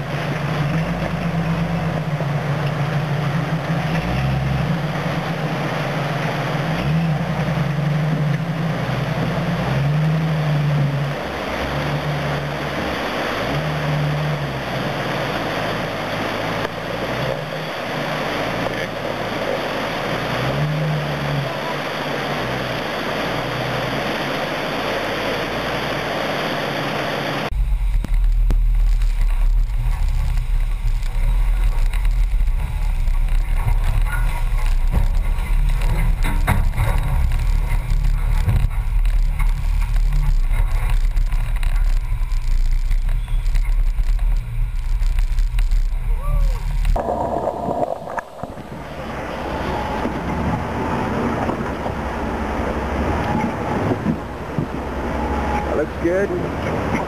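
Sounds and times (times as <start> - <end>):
rushing creek water: 0.0 - 57.0.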